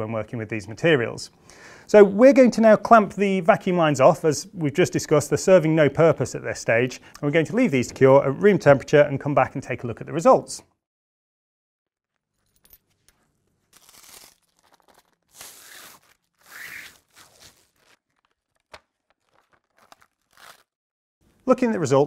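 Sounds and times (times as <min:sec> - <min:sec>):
plastic film tearing rustles: 0:13.7 - 0:20.8.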